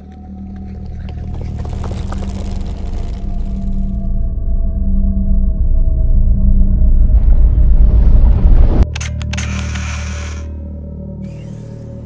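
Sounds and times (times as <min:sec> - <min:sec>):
low droning soundtrack: 0:00.0 - 0:12.0
hissing crackling noise: 0:00.7 - 0:04.2.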